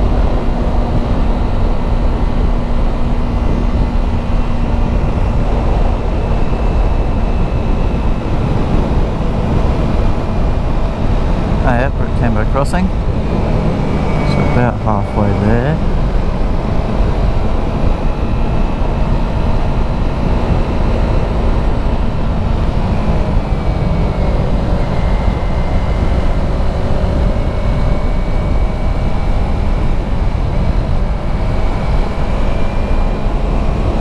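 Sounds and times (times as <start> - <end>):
motorcycle engine running: 0.0 - 34.0
wind rumble on microphone: 0.0 - 34.0.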